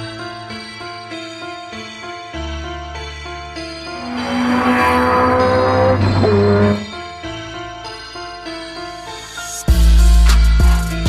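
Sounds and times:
background music: 0.0s - 11.0s
car engine accelerating hard: 3.8s - 6.9s.

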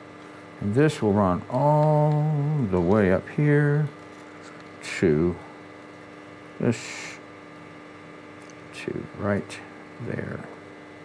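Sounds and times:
electrical hum: 0.0s - 11.0s
person speaking a word: 6.6s - 7.2s.

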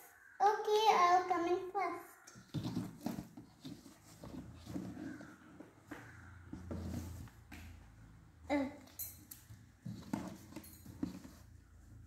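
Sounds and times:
plastic dolls knocking and rustling: 2.3s - 11.5s.

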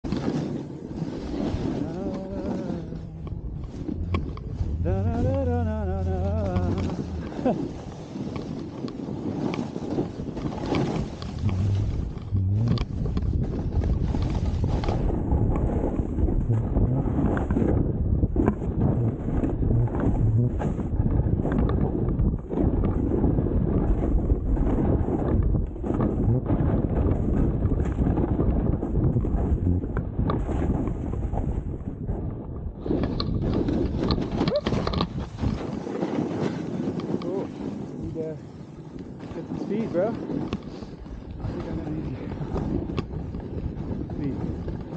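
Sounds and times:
wind buffeting microphone: 0.0s - 44.9s.

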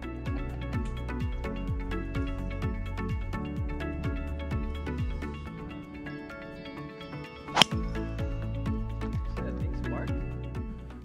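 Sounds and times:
background music: 0.0s - 11.0s
golf ball struck off tee: 7.5s - 8.0s.

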